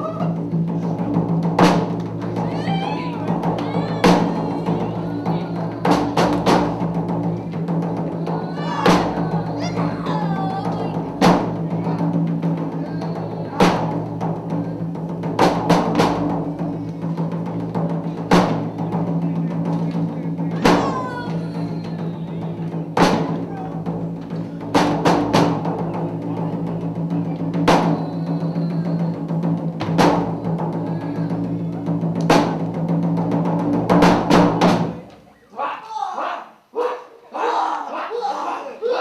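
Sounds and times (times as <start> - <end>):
loud drum strikes: 0.2 - 35.0.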